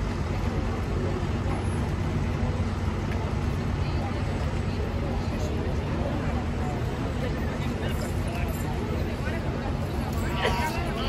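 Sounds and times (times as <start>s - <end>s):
people talking: 0.0s - 11.0s
road traffic rumble: 0.0s - 11.0s.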